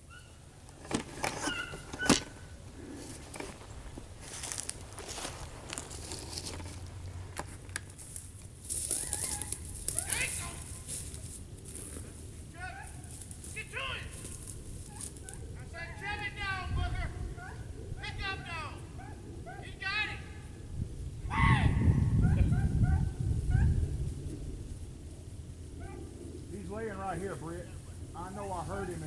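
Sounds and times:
brush snapping: 3.1 - 12.0
dogs baying faintly: 8.9 - 10.9, 11.8 - 13.5, 14.1 - 16.0, 17.1 - 18.0, 18.8 - 19.8, 22.2 - 24.0, 25.7 - 29.0.

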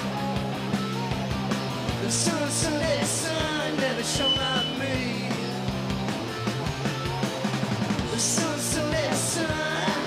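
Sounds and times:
drum kit: 0.0 - 10.0
electric guitars: 0.0 - 10.0.

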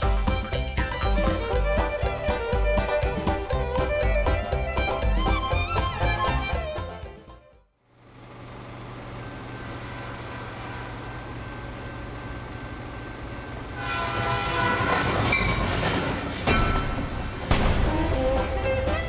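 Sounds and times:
theme music: 0.0 - 7.7, 16.7 - 19.0
train horn: 9.8 - 11.4, 13.7 - 15.7.

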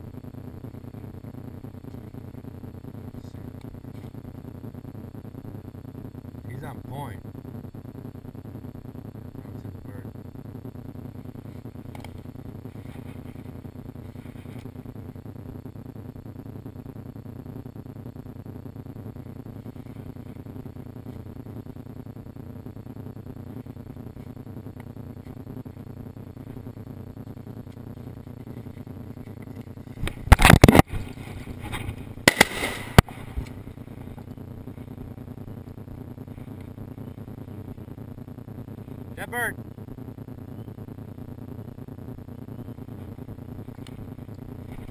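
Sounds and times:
steady low rumble: 0.0 - 44.9
shotgun blasts with echo: 32.3 - 33.0.

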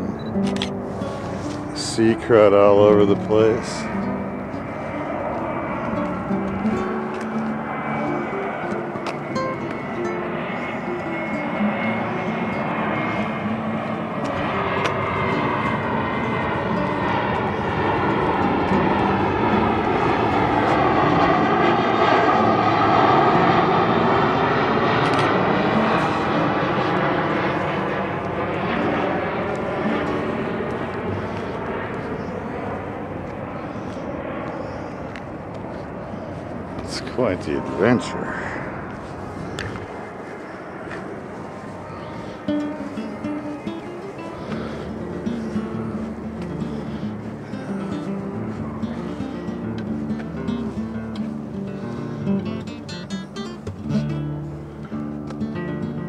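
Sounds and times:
airplane flying over: 0.0 - 56.0.

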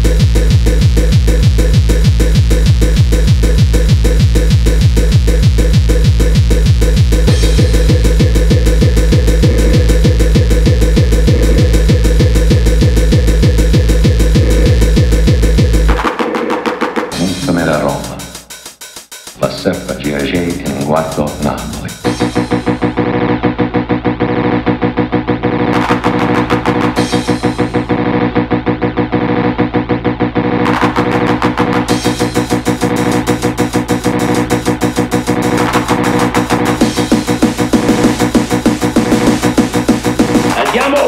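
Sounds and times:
distorted kick drum: 0.0 - 41.0
sustained synthesizer tones: 7.3 - 16.0
sampled spoken voice: 17.2 - 18.4, 19.4 - 22.0, 40.5 - 41.0
rapid snare roll: 30.6 - 41.0.

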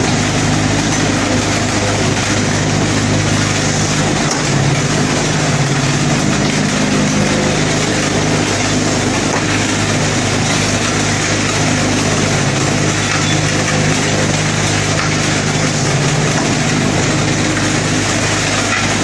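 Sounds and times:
vibrating table mechanical hum and rattle: 0.0 - 19.0.

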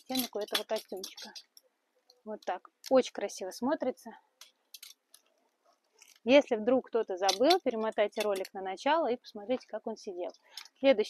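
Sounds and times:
clothes hangers clicking: 0.0 - 1.6, 7.2 - 8.6.

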